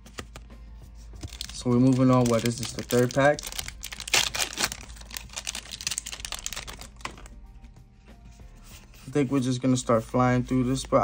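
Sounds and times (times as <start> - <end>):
quiet background music: 0.0 - 11.0
foil pack crinkling: 1.2 - 7.3.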